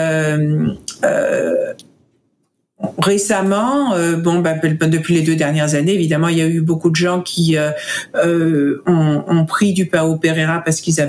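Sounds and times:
woman saying euh: 0.0 - 1.8, 8.1 - 9.6
rough vocal sound: 0.0 - 1.9.

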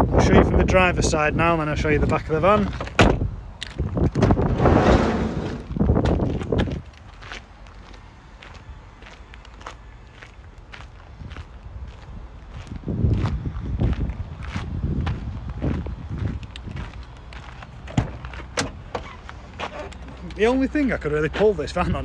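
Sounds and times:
wind buffeting microphone: 0.0 - 7.2, 10.7 - 18.9
footsteps on gravel: 3.6 - 18.5.

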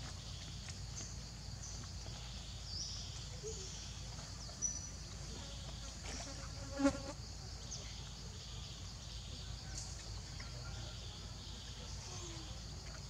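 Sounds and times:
forest insects chorus: 0.0 - 13.0.

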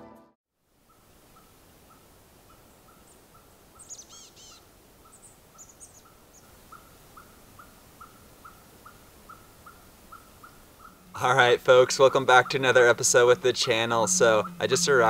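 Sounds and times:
high bird chirps: 2.5 - 15.0.

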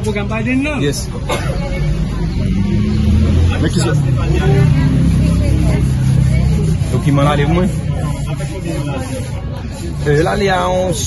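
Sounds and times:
voices talking: 0.0 - 11.0.

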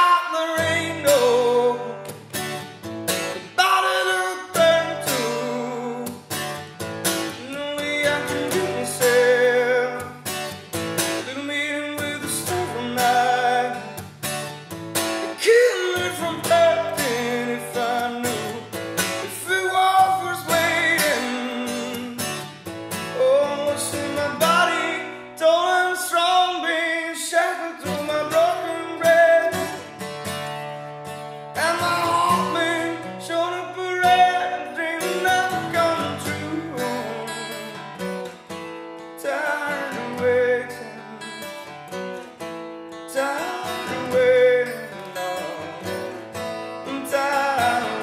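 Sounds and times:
man singing: 0.0 - 2.2, 3.2 - 14.0, 15.1 - 30.0, 31.5 - 38.4, 39.2 - 41.7, 43.1 - 48.0
acoustic guitar strumming: 0.0 - 48.0.

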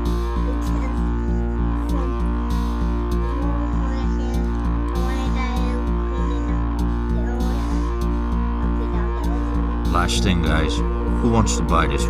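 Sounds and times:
background music with deep bass: 0.0 - 12.0.

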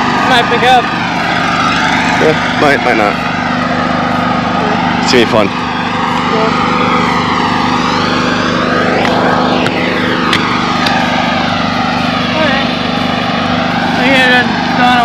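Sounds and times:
engine drone passing by: 0.0 - 15.0.

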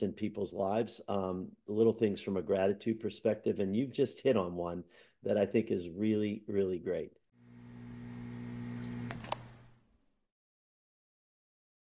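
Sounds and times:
low electrical buzz: 7.4 - 9.9.

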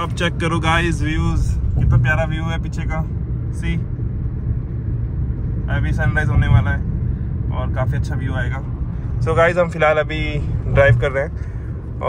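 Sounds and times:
road and engine rumble in car cabin: 0.0 - 12.0.

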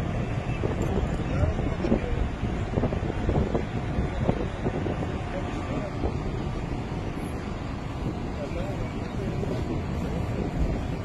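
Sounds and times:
wind buffeting microphone: 0.0 - 11.0
faint indistinct voices: 0.2 - 11.0.

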